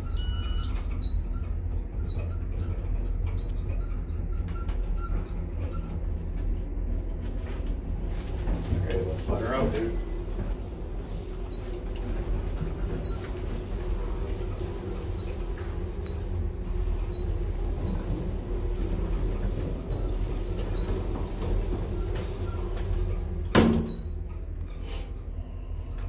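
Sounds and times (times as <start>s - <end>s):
elevator low hum: 0.0s - 26.0s.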